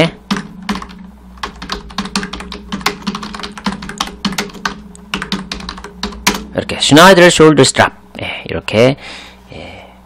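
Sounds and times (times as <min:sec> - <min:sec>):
computer keyboard typing: 0:00.0 - 0:06.6
steady low hum: 0:00.0 - 0:10.0.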